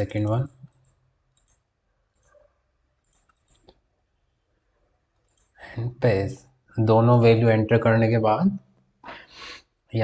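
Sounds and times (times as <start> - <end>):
computer mouse clicks: 0.0 - 3.8, 5.2 - 5.6.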